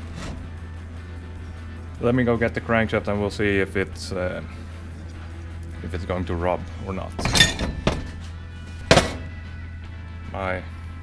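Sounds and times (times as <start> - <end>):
metal part knocking on bench: 7.2 - 8.2, 8.9 - 9.3
metal parts clattering: 7.2 - 8.2.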